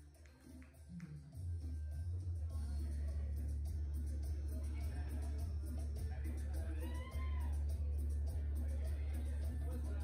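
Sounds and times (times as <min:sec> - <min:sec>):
faint voices: 0:02.4 - 0:10.0.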